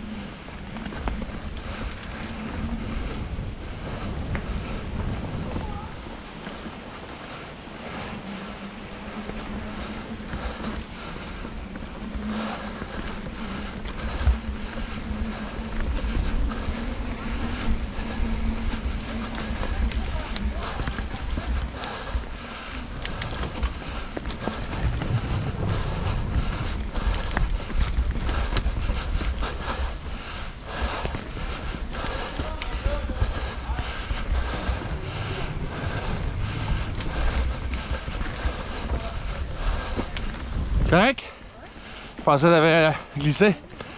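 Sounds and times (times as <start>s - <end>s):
steady hum: 0.0s - 41.4s
wind rumble on microphone: 0.0s - 42.3s
bike tyres rolling over dirt: 0.0s - 43.9s.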